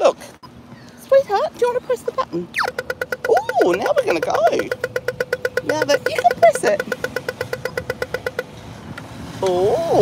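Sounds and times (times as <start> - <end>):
crossing signal rapid beeps: 2.6 - 8.5.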